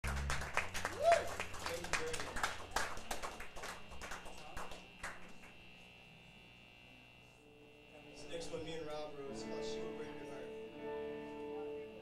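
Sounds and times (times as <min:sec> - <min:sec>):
audience clapping: 0:00.0 - 0:05.6.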